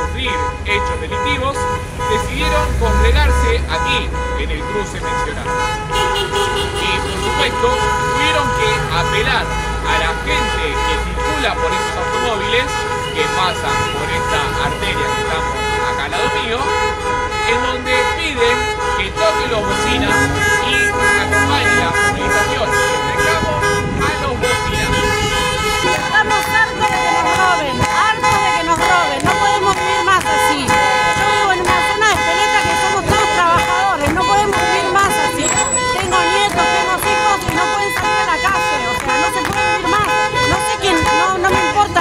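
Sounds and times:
car horns honking: 0:00.0 - 0:42.0
crowd shouting and cheering: 0:19.5 - 0:42.0
people clapping: 0:24.5 - 0:42.0.

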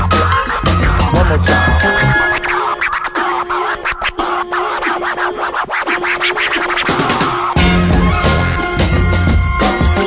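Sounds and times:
turntable scratching: 0:00.0 - 0:08.6.

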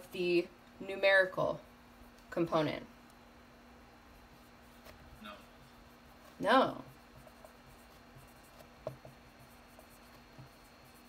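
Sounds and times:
marker writing on whiteboard: 0:04.5 - 0:11.0
marker tapping whiteboard: 0:06.9 - 0:10.6.

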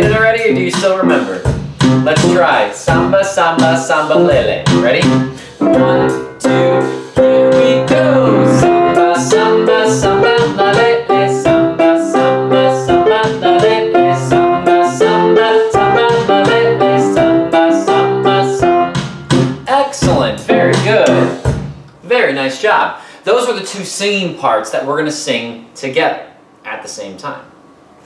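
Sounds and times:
grand piano samba chords: 0:00.0 - 0:21.8.

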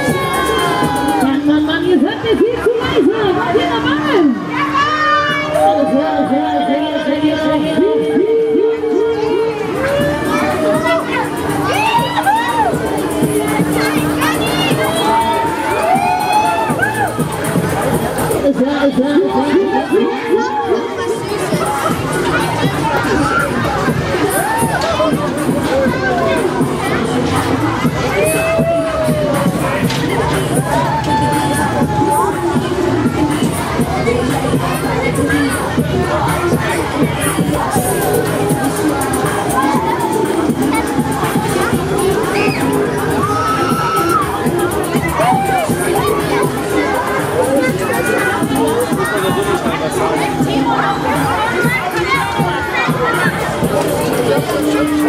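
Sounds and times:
riders screaming and shouting: 0:00.0 - 0:01.4, 0:09.7 - 0:17.3, 0:21.7 - 0:25.8, 0:27.4 - 0:33.4, 0:42.0 - 0:45.9
background music: 0:00.0 - 0:55.0.

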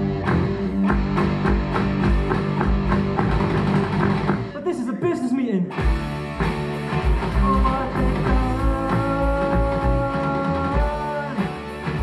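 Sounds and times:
bass guitar: 0:00.0 - 0:04.9, 0:05.7 - 0:12.0
guitar chords: 0:00.0 - 0:12.0
drum beat: 0:00.1 - 0:04.6, 0:05.8 - 0:12.0.

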